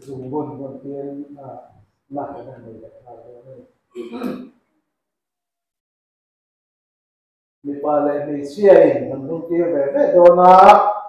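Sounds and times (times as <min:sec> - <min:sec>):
man clearing his throat: 0:04.0 - 0:04.6.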